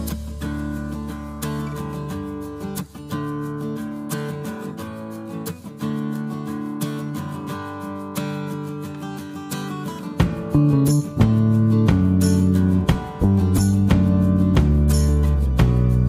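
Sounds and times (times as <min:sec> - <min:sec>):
acoustic guitar strumming chords: 0:00.0 - 0:16.0.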